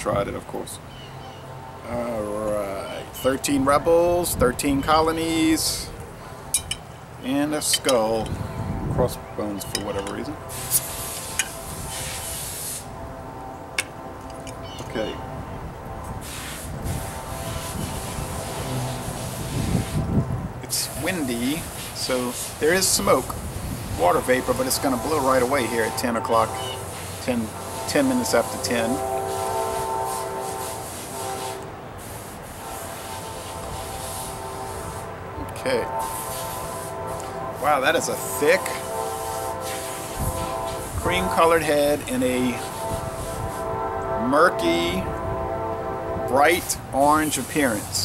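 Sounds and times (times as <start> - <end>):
distant train horn: 0.1 - 48.0.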